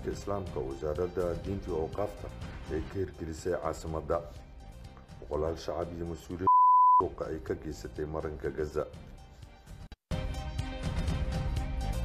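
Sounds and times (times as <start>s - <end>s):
background music: 0.0s - 12.0s
electronic beep: 6.5s - 7.0s.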